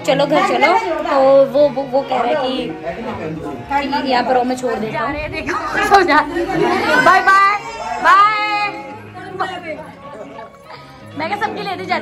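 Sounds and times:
background music: 0.0s - 12.0s
people chattering: 0.0s - 12.0s.

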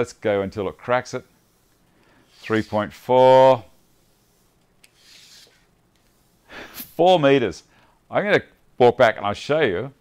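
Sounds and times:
tape measure blade sliding out: 1.6s - 3.4s, 4.6s - 7.0s.

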